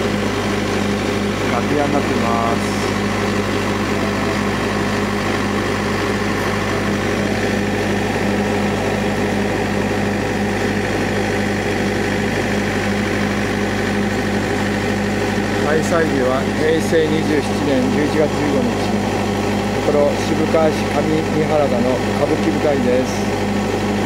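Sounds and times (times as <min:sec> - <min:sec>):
low mechanical hum: 0:00.0 - 0:24.0.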